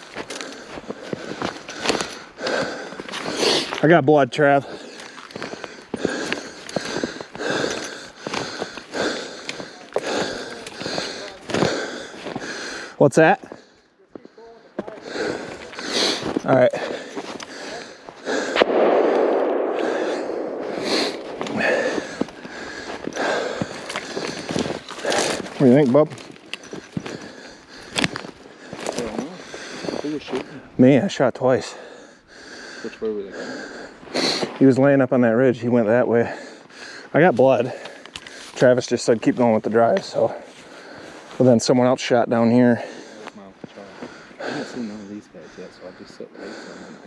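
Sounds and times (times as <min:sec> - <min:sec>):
footsteps crunching through snow: 0:04.7 - 0:12.5, 0:14.2 - 0:30.6, 0:40.2 - 0:41.6
sharp crack: 0:18.3 - 0:24.4
twigs snapping underfoot: 0:21.1 - 0:27.2.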